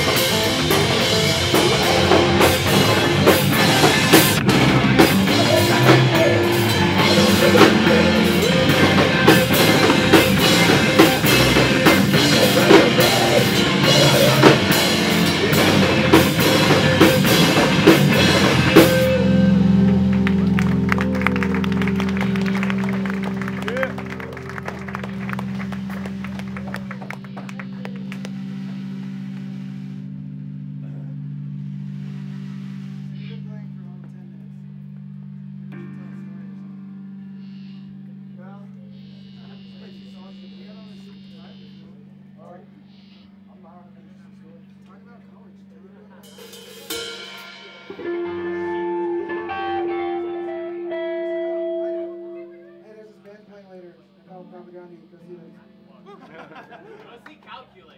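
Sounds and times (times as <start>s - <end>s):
voices talking: 0.0s - 28.8s, 37.6s - 46.6s
live rock band playing: 0.0s - 33.5s, 46.2s - 53.1s
amplified guitar hum: 0.0s - 57.0s
electric guitar notes ringing: 0.0s - 57.0s.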